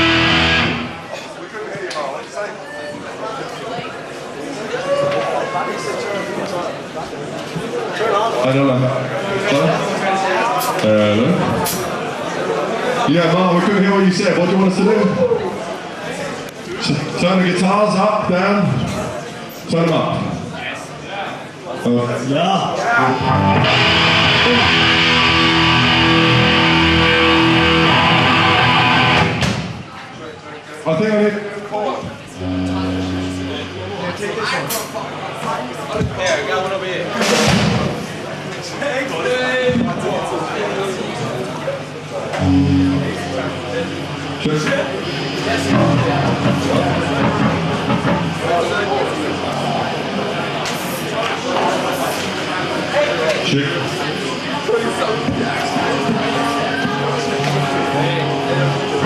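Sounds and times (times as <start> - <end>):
electric guitar chord ringing: 0.0 - 1.0, 23.0 - 29.4, 32.4 - 34.4, 42.4 - 49.5, 54.6 - 59.0
indistinct voices chattering: 0.0 - 59.0.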